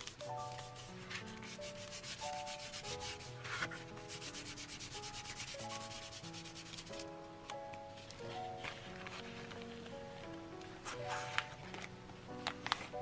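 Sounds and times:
gentle background music: 0.0 - 13.0
paper being rubbed: 0.4 - 7.0.

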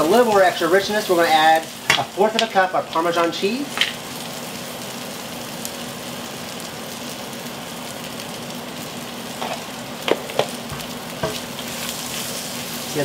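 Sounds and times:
vegetables sizzling in a skillet: 0.0 - 13.0.

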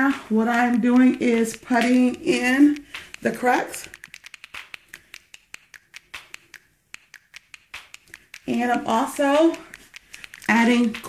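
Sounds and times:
small sharp clicks and taps: 0.0 - 11.0.

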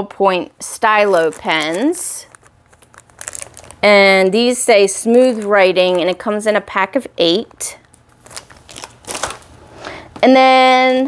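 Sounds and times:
plastic packaging crackling: 0.8 - 6.4, 7.4 - 9.6.

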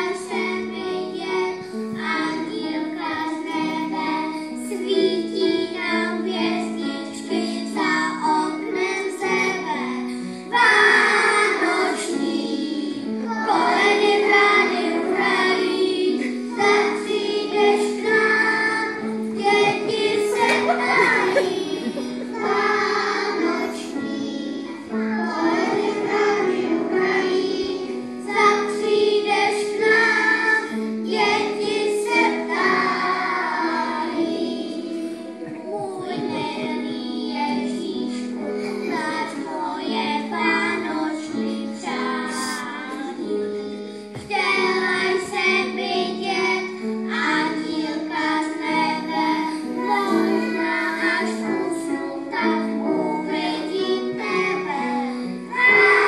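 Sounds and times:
children singing: 0.0 - 56.0
instrumental accompaniment: 0.1 - 56.0.

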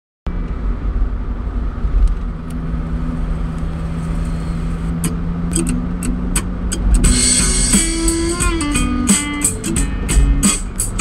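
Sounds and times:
car engine running: 0.3 - 11.0.

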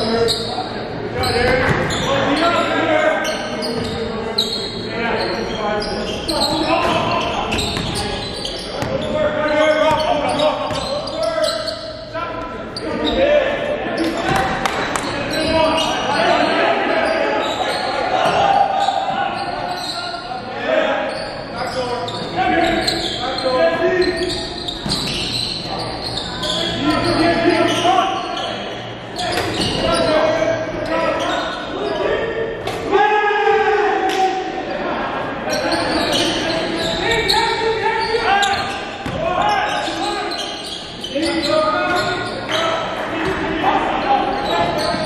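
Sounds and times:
players calling out: 0.0 - 45.0
basketball bouncing on wooden court: 7.5 - 8.0, 8.8 - 9.1, 39.0 - 39.2.

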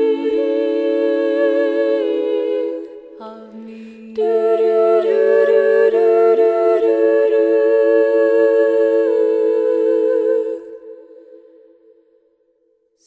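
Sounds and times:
female vocal quartet chord: 0.0 - 11.6.

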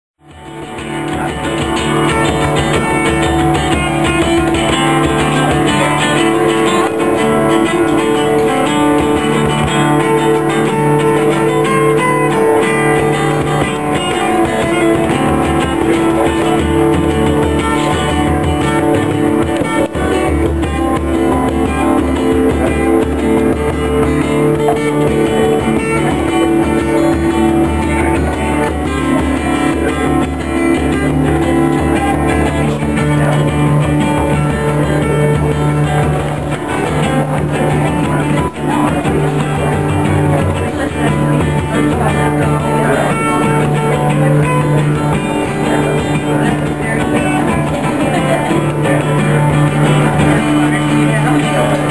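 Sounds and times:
acoustic guitar playing a jig: 0.2 - 51.9
frame drum beating: 0.2 - 51.9.

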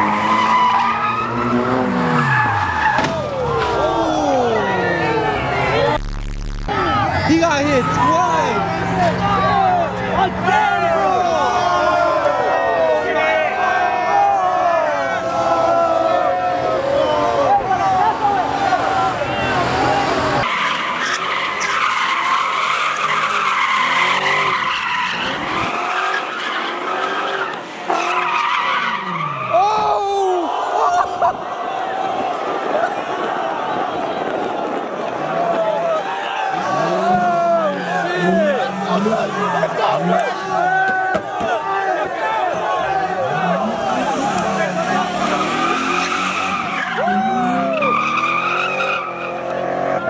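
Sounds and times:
loud voices: 0.0 - 50.0
car engine revving: 17.6 - 29.4, 43.2 - 50.0
tyres squealing: 19.5 - 29.8, 36.5 - 49.5.

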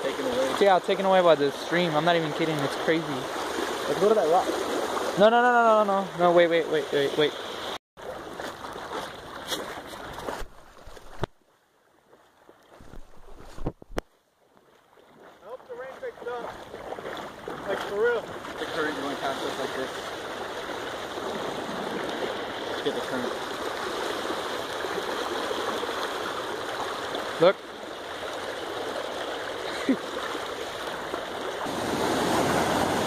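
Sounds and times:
water churning around legs wading: 0.0 - 5.3, 6.1 - 11.3, 14.4 - 33.0
floodwater rushing down a channel: 0.0 - 33.0.

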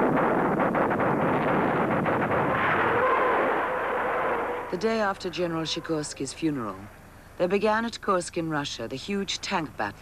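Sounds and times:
rapid gunfire: 0.0 - 4.7
artillery blasts: 0.0 - 6.0
heavy rumble: 0.0 - 6.9.

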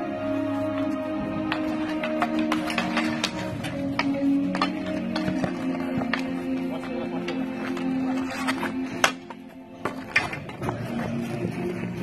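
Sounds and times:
background music: 0.0 - 12.0
hockey stick striking ball: 1.4 - 6.3.

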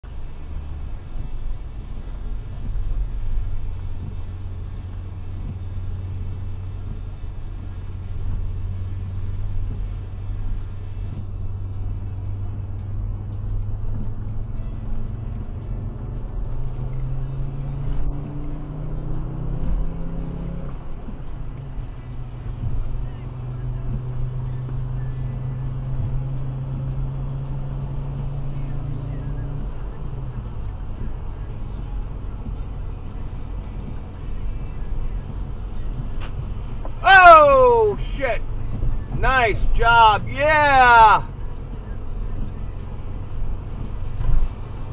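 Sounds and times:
car engine and tyre noise: 0.0 - 44.9.

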